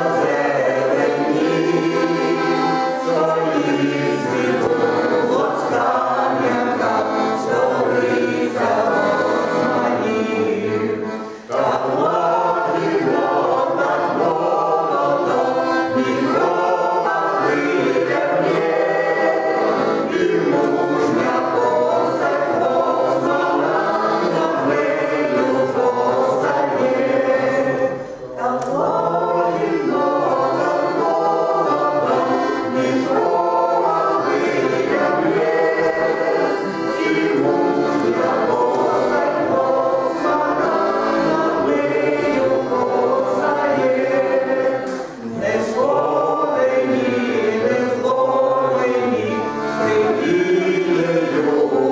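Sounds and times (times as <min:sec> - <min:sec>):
accordion: 0:00.0 - 0:51.9
mixed choir singing: 0:00.0 - 0:51.9.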